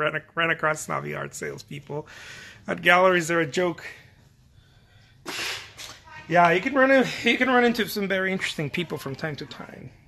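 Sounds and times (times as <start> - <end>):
person puffing breath: 5.2 - 5.8.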